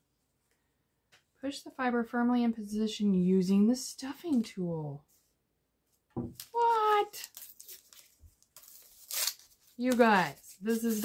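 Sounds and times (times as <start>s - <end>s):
plastic rustling: 6.3s - 11.0s.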